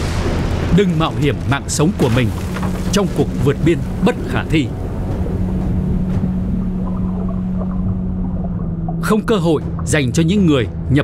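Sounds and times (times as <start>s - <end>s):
deep muffled underwater rumble: 2.3s - 10.9s
low droning tone: 2.3s - 11.0s.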